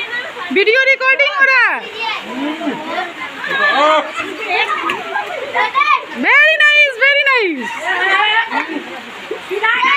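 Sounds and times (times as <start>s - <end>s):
children chattering and shouting: 0.0s - 9.9s.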